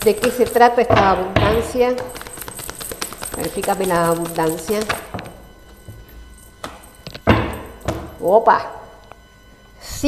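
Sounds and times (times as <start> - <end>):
cards tapping and clicking: 0.0 - 5.4.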